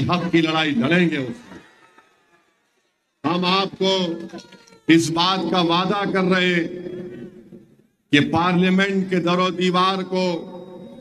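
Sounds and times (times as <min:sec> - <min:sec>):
man's amplified speech: 0:00.0 - 0:01.6, 0:03.2 - 0:07.4, 0:08.1 - 0:11.0.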